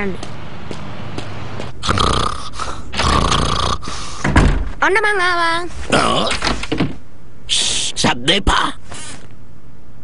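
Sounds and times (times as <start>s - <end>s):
cartoon old man snoring: 1.8s - 3.9s.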